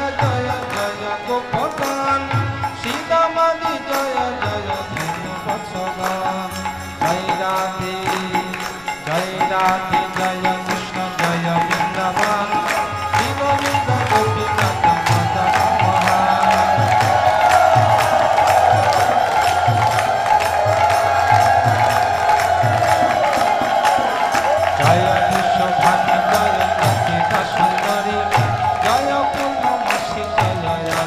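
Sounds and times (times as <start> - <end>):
harmonium: 0.0 - 31.0
group chanting: 11.2 - 31.0.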